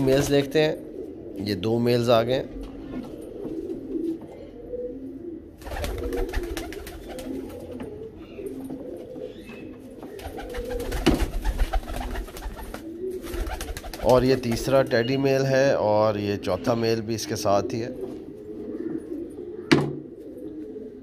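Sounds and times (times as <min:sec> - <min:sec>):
pigeons cooing: 0:00.0 - 0:21.0.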